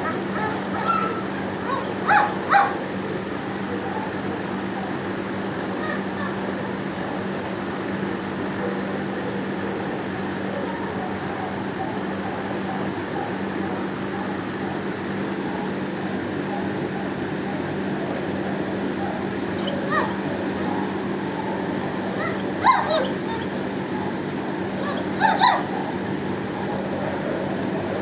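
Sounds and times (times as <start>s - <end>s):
dog whimper: 0.0s - 2.7s, 19.0s - 23.6s, 24.8s - 25.9s
dogs barking din: 0.0s - 3.0s, 18.6s - 27.3s
steady hum: 0.0s - 28.0s.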